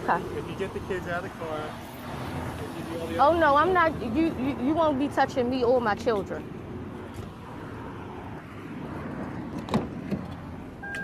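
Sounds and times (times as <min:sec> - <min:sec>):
motor vehicle noise: 0:00.0 - 0:11.0.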